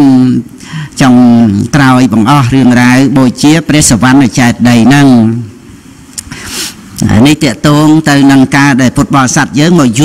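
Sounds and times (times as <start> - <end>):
man talking into microphone: 0.0 - 5.5, 7.0 - 10.0.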